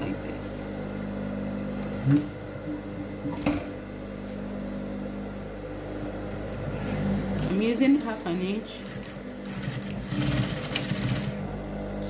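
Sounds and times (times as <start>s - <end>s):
sewing machine humming: 6.6s - 11.7s.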